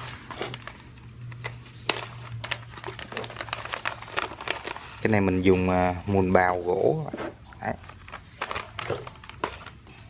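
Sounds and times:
plastic bag crinkling: 0.2s - 5.7s, 7.6s - 10.0s.

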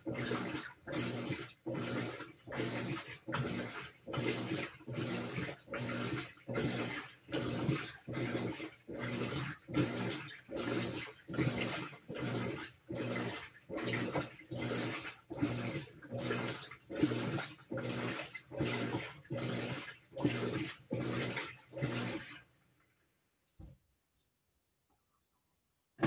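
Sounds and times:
washing machine agitating: 0.0s - 22.9s.

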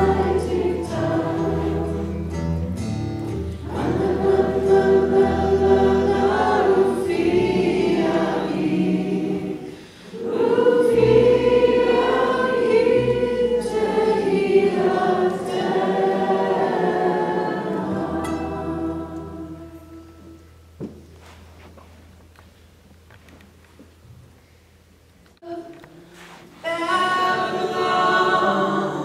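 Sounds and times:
choir singing sustained notes: 0.0s - 2.5s, 3.5s - 20.4s, 26.7s - 29.0s.

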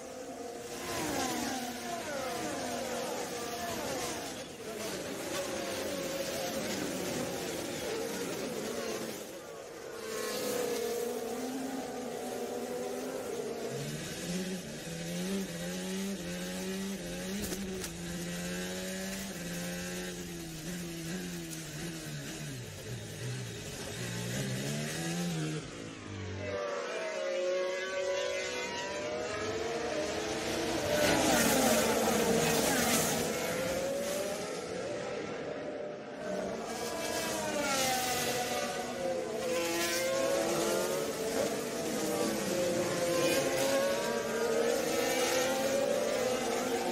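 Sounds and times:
racing car engines: 0.0s - 46.9s.

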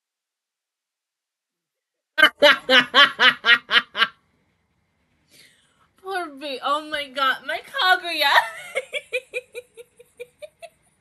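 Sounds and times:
person laughing: 2.2s - 4.1s, 8.4s - 10.7s.

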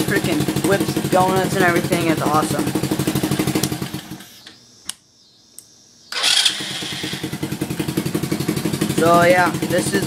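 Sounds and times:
quad bike engine idling: 0.0s - 4.3s, 6.2s - 10.0s.

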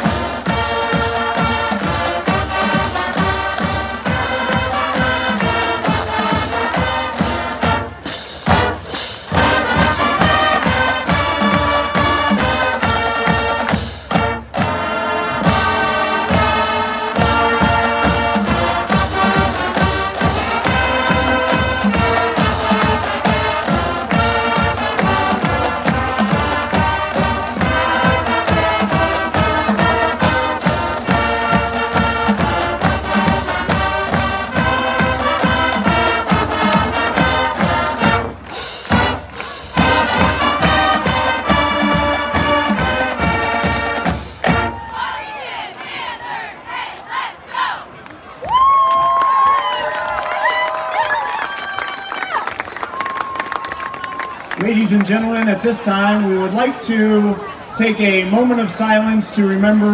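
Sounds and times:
drumline: 0.0s - 59.9s
marching band brass: 0.0s - 59.9s.

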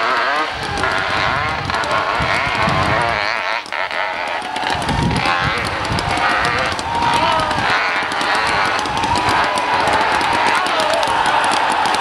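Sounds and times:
exhaust crackle: 0.0s - 12.0s
motorcycle engine at high revs: 0.0s - 12.0s.

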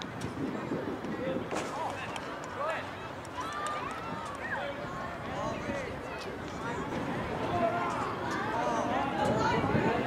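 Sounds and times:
distant people talking and calling: 0.1s - 10.0s.

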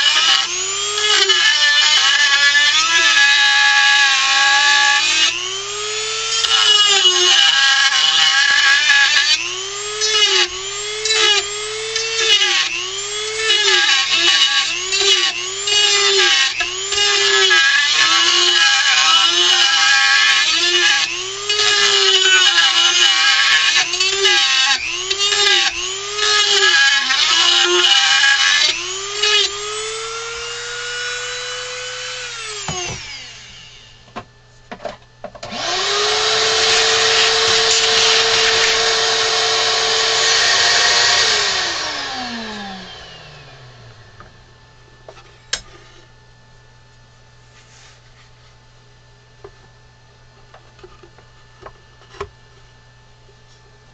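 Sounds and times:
rotary tool cutting wood: 0.0s - 34.0s, 35.4s - 44.2s.

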